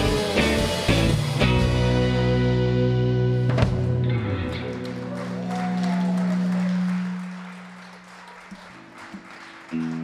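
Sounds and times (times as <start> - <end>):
rock band chord ringing out: 0.0 - 5.0
audience applause: 4.5 - 10.0.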